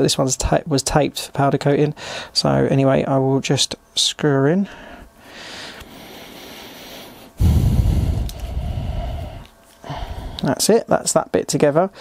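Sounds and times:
breath blowing onto microphone: 0:07.3 - 0:10.4.

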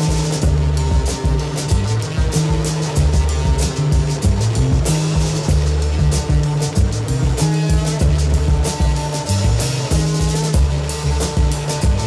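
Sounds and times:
deep bass line: 0:00.0 - 0:12.0
drum kit beat: 0:00.0 - 0:12.0.

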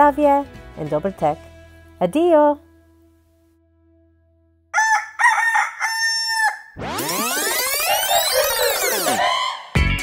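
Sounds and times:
rooster crowing: 0:04.7 - 0:06.8
music with sweeping tones: 0:06.8 - 0:10.0.

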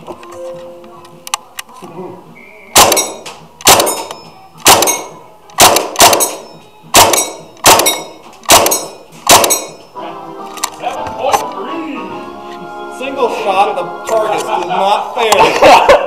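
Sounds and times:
airsoft gun shots: 0:02.8 - 0:09.8
pellet hitting metal target: 0:02.8 - 0:09.8.

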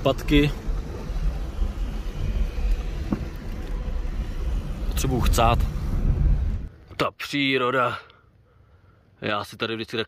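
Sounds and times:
car engine and tyre rumble: 0:00.0 - 0:09.7.

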